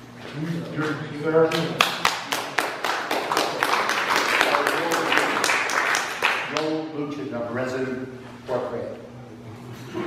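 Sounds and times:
audience applauding: 1.5 - 6.7.

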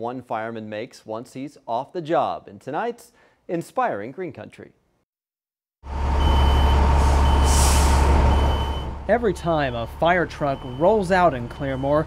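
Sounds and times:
diesel engine rumbling: 5.9 - 12.0
reversing alarm beeping: 5.9 - 12.0
air hiss: 7.0 - 8.2.

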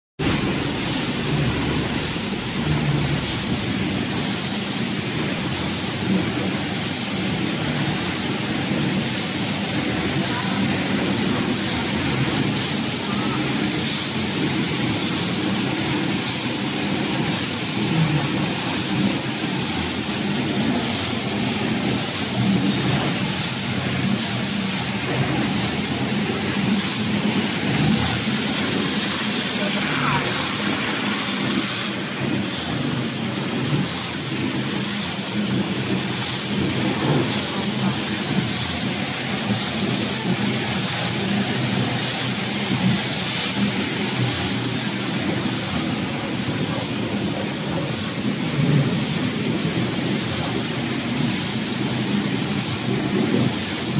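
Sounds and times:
low machinery rumble: 0.2 - 53.9
workshop machinery rushing: 0.2 - 53.9.

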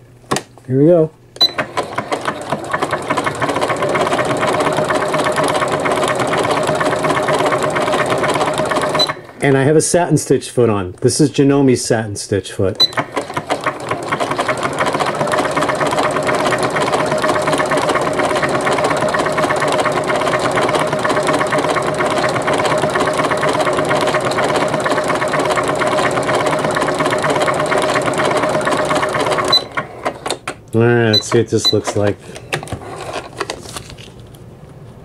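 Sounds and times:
sewing machine sewing: 1.4 - 9.3, 12.8 - 30.5.

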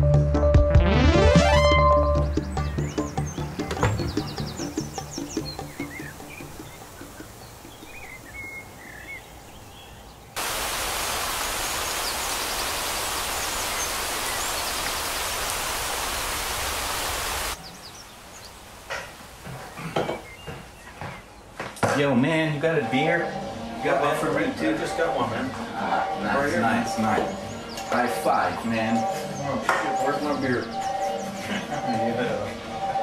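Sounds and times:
music: 0.0 - 7.2, 22.0 - 33.0
birds chirping: 1.8 - 33.0
garden hose spraying water: 4.0 - 9.6, 10.4 - 21.1.

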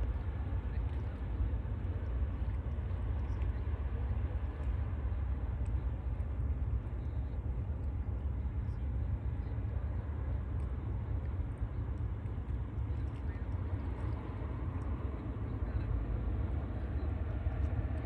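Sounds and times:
low steady rumble: 0.0 - 18.0.

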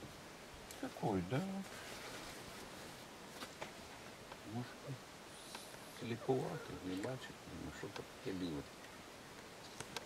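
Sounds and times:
soft clicks: 8.8 - 10.0.

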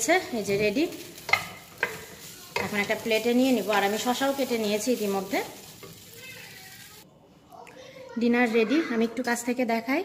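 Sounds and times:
spatula stirring food in pot: 0.0 - 7.0
light sizzle: 0.0 - 7.1.

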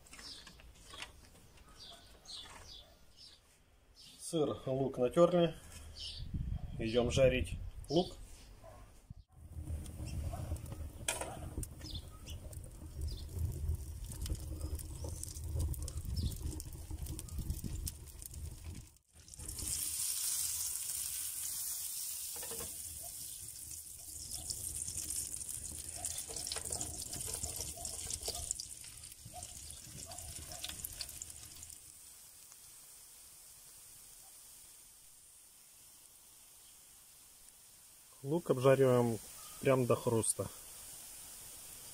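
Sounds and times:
onions sizzling in a frying pan: 9.5 - 41.9.

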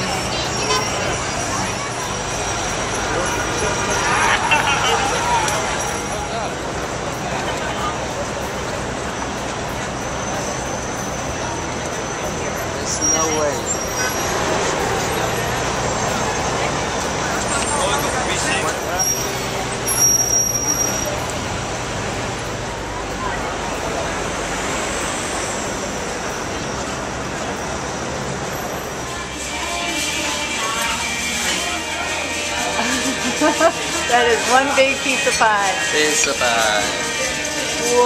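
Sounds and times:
crowd chatter: 0.0 - 38.0
steady traffic noise: 0.0 - 38.0.

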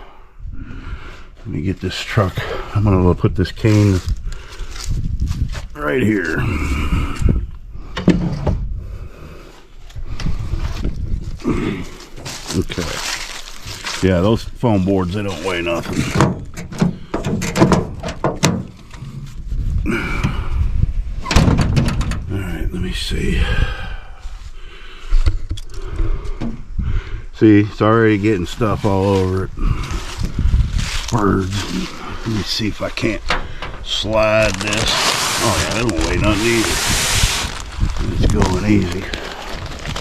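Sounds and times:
wind rumbling on microphone: 2.4 - 14.7, 15.8 - 40.0
handling knocks and rustles: 15.0 - 19.5.

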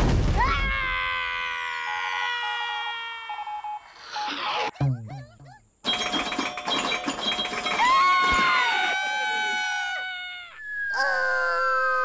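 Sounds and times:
descending held tone: 10.6 - 12.0.

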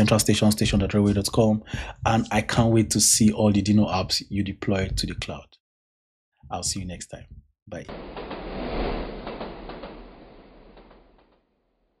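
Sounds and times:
rushing noise with low rumble: 7.8 - 11.4.

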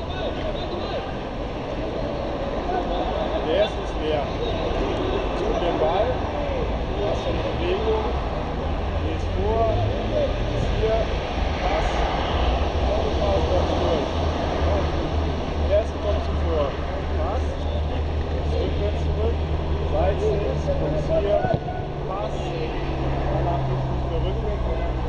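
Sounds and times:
distant voices: 0.0 - 25.0.

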